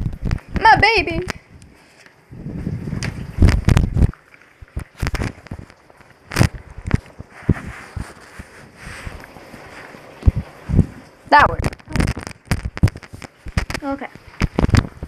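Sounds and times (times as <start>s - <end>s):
phone handling bumps and rustles: 11.5s - 15.0s.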